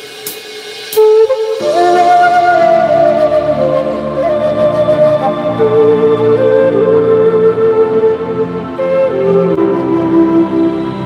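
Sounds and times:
bamboo flute playing: 0.9 - 11.0
soft electronic backing track: 1.0 - 11.0.

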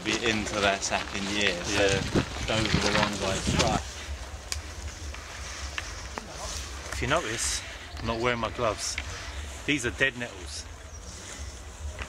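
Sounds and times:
wind rumble on microphone: 0.2 - 5.8
faint clicks from handling plants: 4.4 - 7.1, 8.9 - 9.2.

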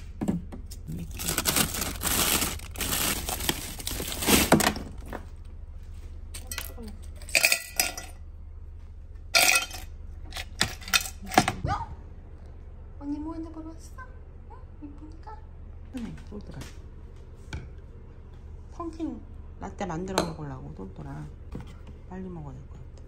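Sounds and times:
frozen packages crinkling: 0.7 - 5.3
ice cubes clinking into cup: 9.4 - 9.9.

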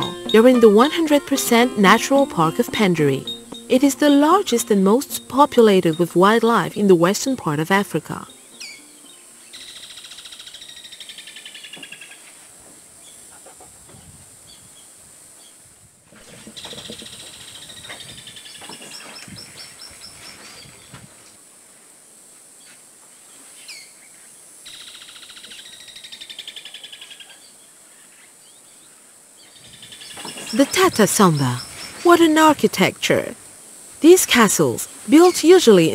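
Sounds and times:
bird trilling: 0.0 - 6.8
insect hiss: 0.0 - 35.9.

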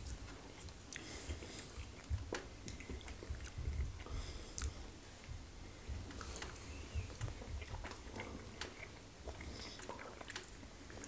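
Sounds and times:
chewing with wet mouth clicks: 0.0 - 4.8, 6.1 - 11.0.

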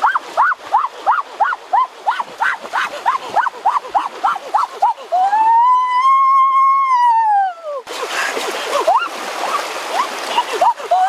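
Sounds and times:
rushing splashing water: 0.0 - 11.0.

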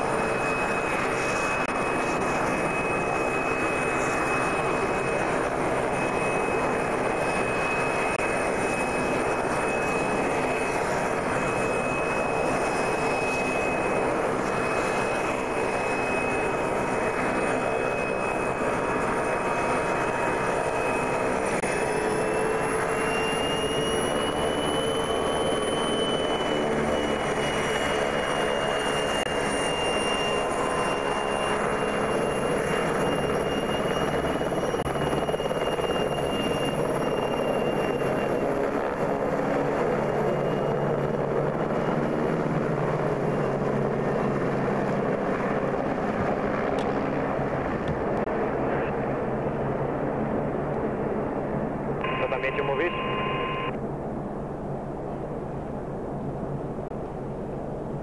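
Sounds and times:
helicopter rotor and engine: 0.0 - 58.0.

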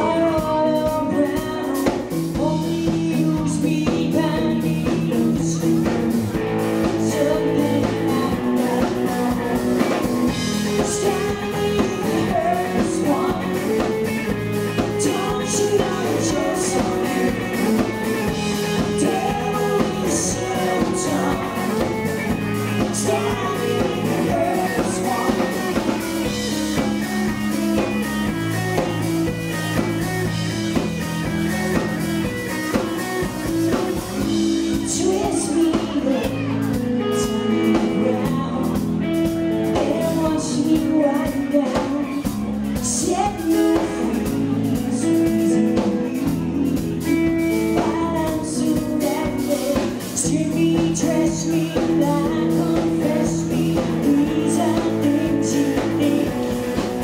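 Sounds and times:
woman singing: 0.0 - 27.1, 34.2 - 57.0
bass guitar: 0.0 - 57.0
drum kit with cymbals: 0.0 - 57.0
electric guitar: 0.0 - 57.0.

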